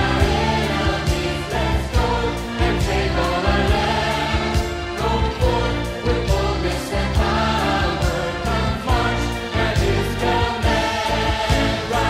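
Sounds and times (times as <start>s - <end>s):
band with steady drum beat: 0.0s - 12.0s
voices singing together: 0.0s - 12.0s.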